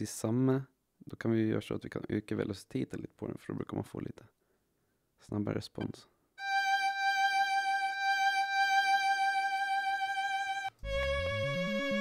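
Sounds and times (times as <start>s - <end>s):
sampled violin long high note: 6.4s - 12.0s
bass line: 10.8s - 12.0s.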